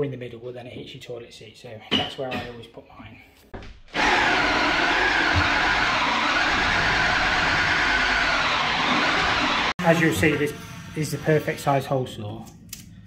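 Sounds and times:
power drill cutting with hole saw: 0:03.9 - 0:11.8.

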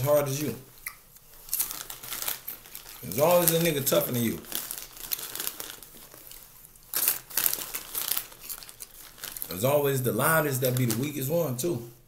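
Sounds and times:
crinkling rustle: 0:00.0 - 0:12.0.

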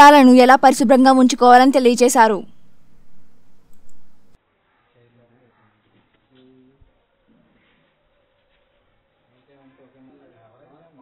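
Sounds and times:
low steady hum: 0:00.0 - 0:04.4
faint clicks: 0:03.7 - 0:04.1.

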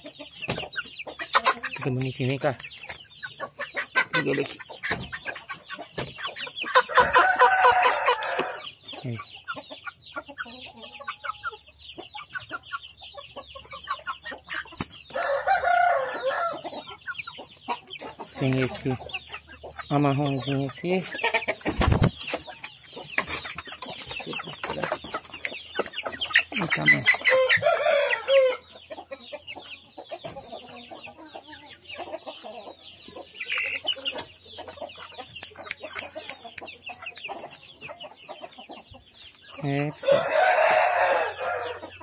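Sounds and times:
chickens clucking: 0:00.0 - 0:42.0
cockerel crowing: 0:06.8 - 0:08.6, 0:15.2 - 0:16.7, 0:27.3 - 0:28.6, 0:40.0 - 0:41.9.

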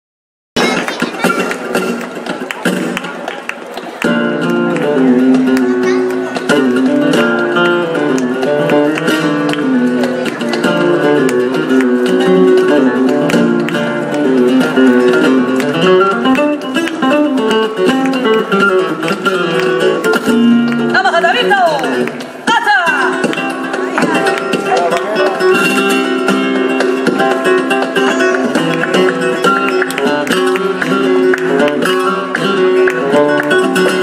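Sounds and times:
handclaps: 0:00.6 - 0:22.4, 0:23.1 - 0:34.0
flamenco guitar playing: 0:00.6 - 0:34.0.

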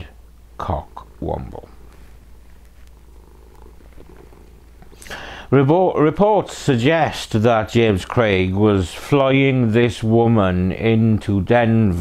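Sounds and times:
cat purring: 0:00.0 - 0:11.0.

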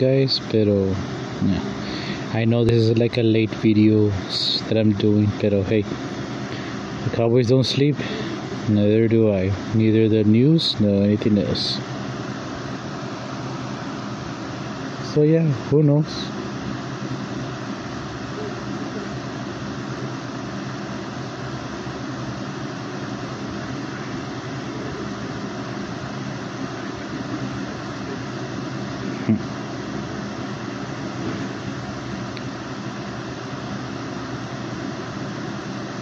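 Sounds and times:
fan hiss and hum: 0:00.0 - 0:36.0.

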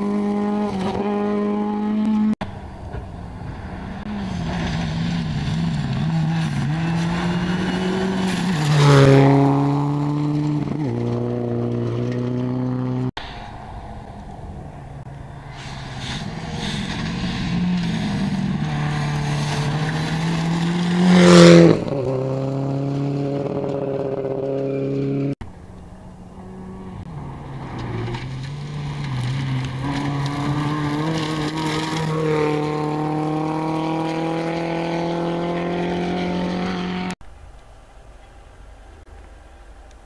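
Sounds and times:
rally car passing by: 0:00.0 - 0:25.4, 0:26.0 - 0:37.2
rally car approaching: 0:00.0 - 0:37.2.

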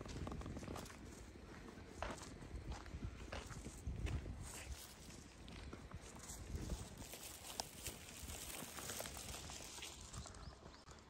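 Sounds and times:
footsteps on gravel: 0:00.0 - 0:11.0
steady outdoor hiss: 0:00.0 - 0:11.0.

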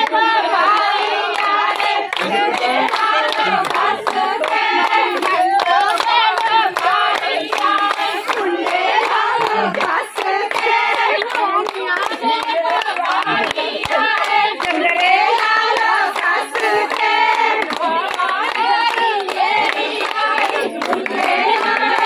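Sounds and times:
hand-clapping in time: 0:00.0 - 0:22.0
women singing a chant: 0:00.0 - 0:22.0.

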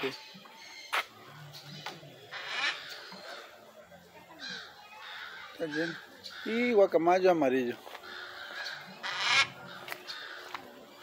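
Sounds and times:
macaw squawk: 0:02.3 - 0:03.5, 0:08.0 - 0:10.6.

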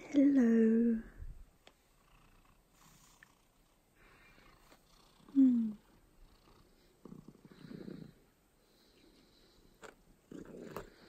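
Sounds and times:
cat purring: 0:01.8 - 0:11.0.

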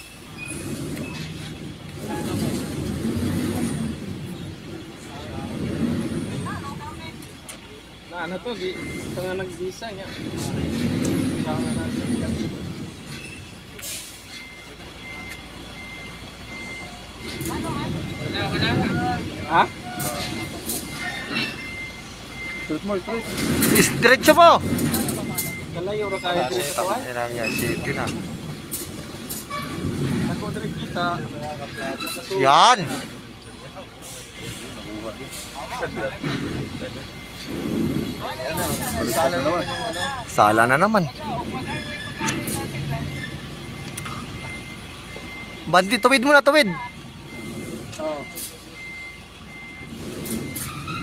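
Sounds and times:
truck diesel engine rumbling: 0:00.0 - 0:51.0.

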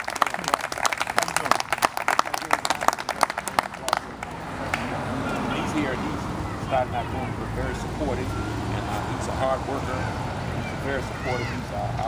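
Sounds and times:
audience applause: 0:00.0 - 0:04.4.

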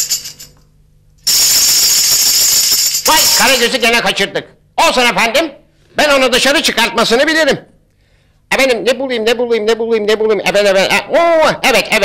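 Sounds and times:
tambourine jingling: 0:00.0 - 0:04.0.

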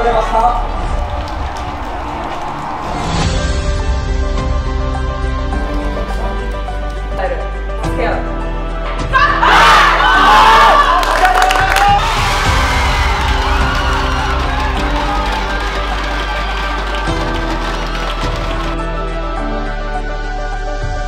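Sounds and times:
background music: 0:00.0 - 0:21.0
crowd cheering and shouting: 0:09.1 - 0:18.7.

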